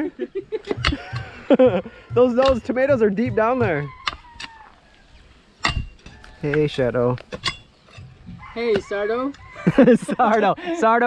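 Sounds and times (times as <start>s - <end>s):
steel bar striking stony soil: 0.7s - 1.5s, 2.1s - 4.7s, 5.6s - 8.9s.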